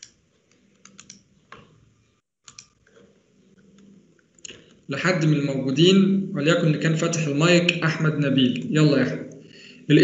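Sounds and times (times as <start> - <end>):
computer clicks: 0.0 - 1.7, 2.4 - 2.8.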